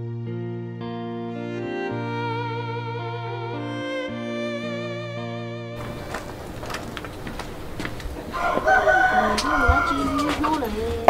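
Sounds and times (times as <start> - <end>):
rooster crowing: 7.6 - 11.0.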